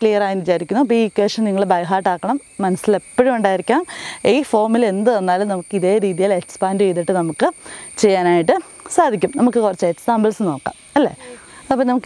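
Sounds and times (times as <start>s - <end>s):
crickets droning: 0.0s - 12.0s
woman speaking: 0.0s - 12.0s.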